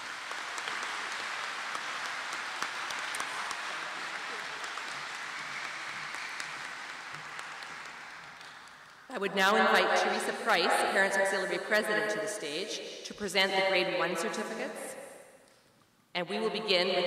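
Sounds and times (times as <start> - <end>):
crowd applauding: 0.0 - 9.1.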